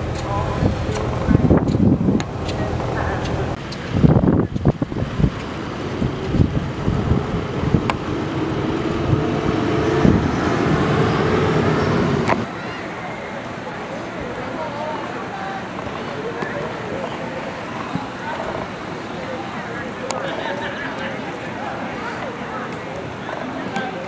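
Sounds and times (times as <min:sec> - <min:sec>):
engine hum: 0:00.0 - 0:12.5
people's voices: 0:00.0 - 0:24.0
threshing machine whine: 0:05.5 - 0:12.5.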